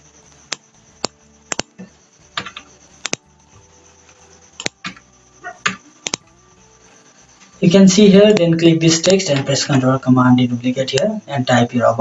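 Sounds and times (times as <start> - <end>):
computer mouse clicking: 0.4 - 3.2, 4.6 - 5.0, 5.6 - 6.3, 8.2 - 9.5.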